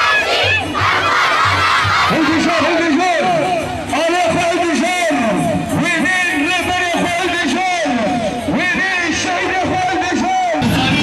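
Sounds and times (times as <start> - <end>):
crowd shouting a slogan: 0.0 - 3.7.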